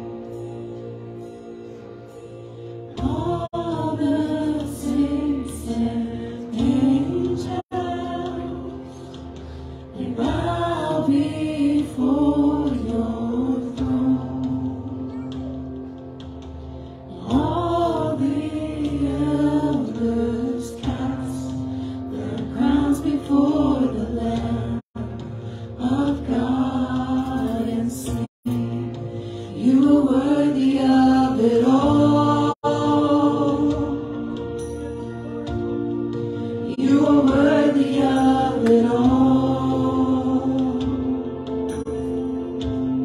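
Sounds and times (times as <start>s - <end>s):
man and woman singing worship song: 3.0s - 14.9s, 17.1s - 34.5s, 36.4s - 41.3s.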